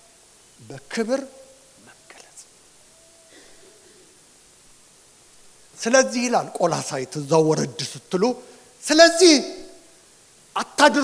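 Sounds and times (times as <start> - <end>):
steady room hiss: 0.0 - 11.0
faint breaths: 1.8 - 4.4, 8.4 - 8.8.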